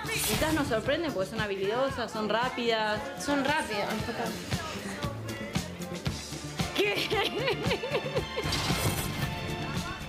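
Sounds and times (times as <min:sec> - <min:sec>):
music: 0:00.0 - 0:10.0
woman laughing: 0:06.8 - 0:08.6.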